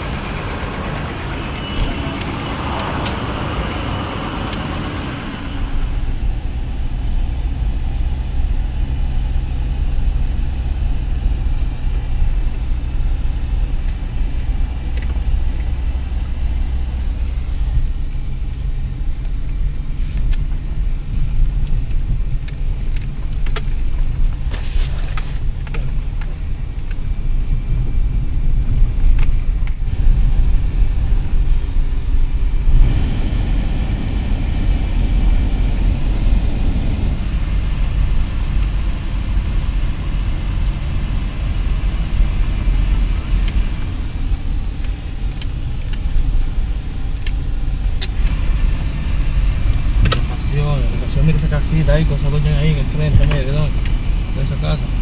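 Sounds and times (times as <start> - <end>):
vehicle engine and road rumble: 0.0 - 55.0.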